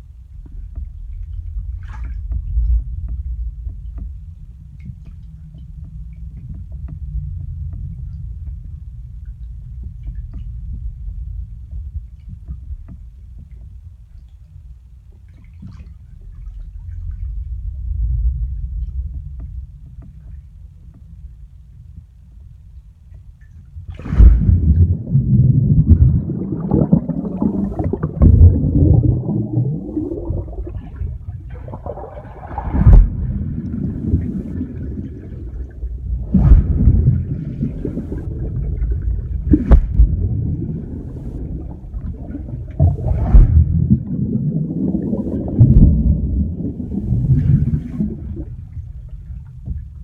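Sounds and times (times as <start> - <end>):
underwater rumbling and gurgling: 0.0 - 50.0.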